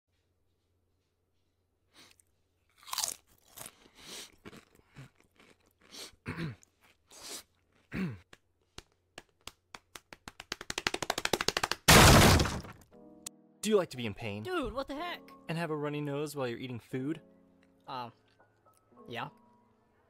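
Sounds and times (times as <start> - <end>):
crunchy chips being chewed: 2.1 - 7.9
quick taps: 8.3 - 11.9
door smashed in crash: 11.9 - 12.8.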